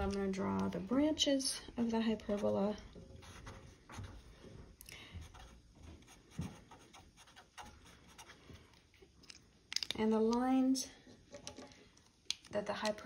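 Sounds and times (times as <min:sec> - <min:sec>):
pen scratching on paper: 0:05.3 - 0:08.4.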